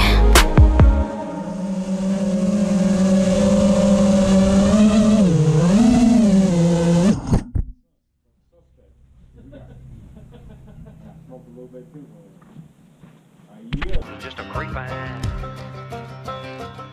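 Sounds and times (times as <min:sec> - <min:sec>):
quadcopter motors humming: 0:00.0 - 0:07.5.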